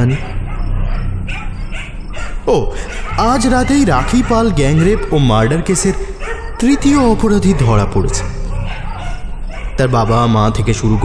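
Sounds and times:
dogs barking faintly: 0.0 - 11.0
low music drone: 0.0 - 11.0.

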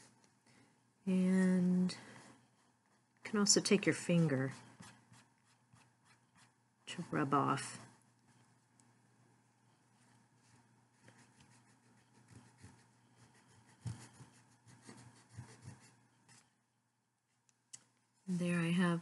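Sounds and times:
fingertip scratching paper: 11.1 - 16.0.

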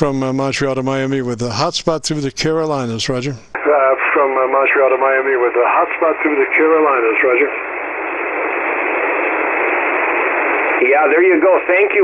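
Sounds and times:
man's voice over radio: 0.0 - 7.6, 10.8 - 12.0
radio static hiss: 2.7 - 12.0.

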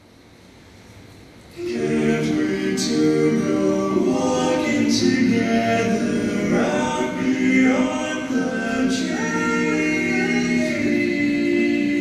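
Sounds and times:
male quartet singing a cappella: 1.6 - 12.0.

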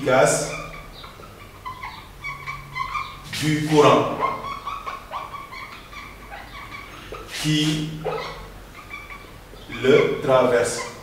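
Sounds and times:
marker squeaking on whiteboard: 0.0 - 11.0.

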